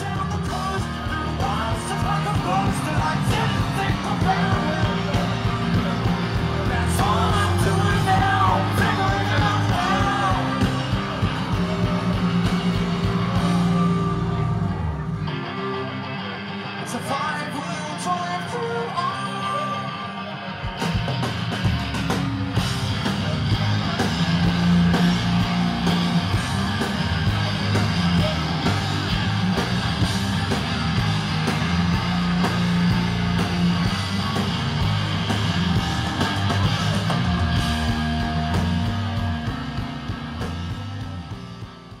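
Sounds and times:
drum kit: 0:00.0 - 0:15.6, 0:20.6 - 0:42.0
bass guitar: 0:00.0 - 0:42.0
electric guitars: 0:00.0 - 0:42.0.

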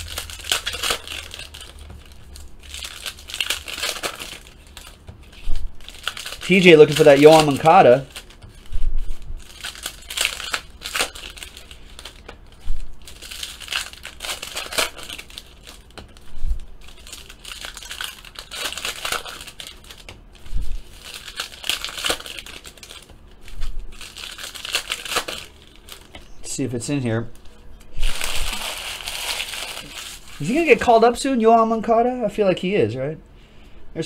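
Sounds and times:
foil wrapper crinkling and tearing: 0:00.0 - 0:26.2, 0:27.4 - 0:31.2.

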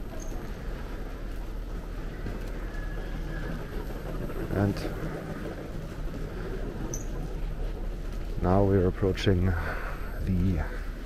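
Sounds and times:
faint footsteps: 0:00.0 - 0:11.0
general murmur: 0:00.0 - 0:11.0
steady low hum: 0:00.0 - 0:11.0.

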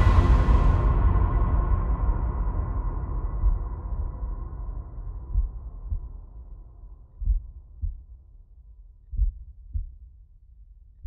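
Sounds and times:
low drone: 0:00.0 - 0:08.1
heartbeat thumps: 0:03.3 - 0:04.2, 0:05.2 - 0:06.4, 0:07.1 - 0:08.2, 0:09.0 - 0:10.1.

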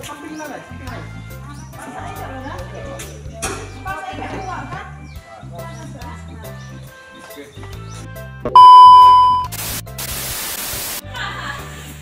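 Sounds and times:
electronic beep: 0:08.5 - 0:09.5
static hiss: 0:09.5 - 0:11.0.

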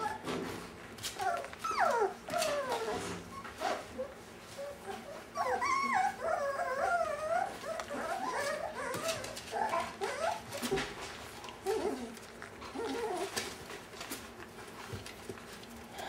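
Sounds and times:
puppies whining: 0:00.0 - 0:16.0.

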